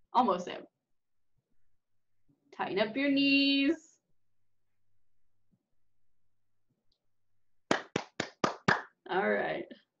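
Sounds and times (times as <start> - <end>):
hand claps: 7.7 - 9.0.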